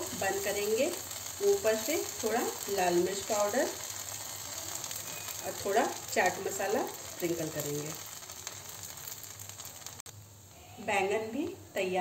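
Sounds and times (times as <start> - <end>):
eggplant sizzling in oil: 0.0 - 11.9.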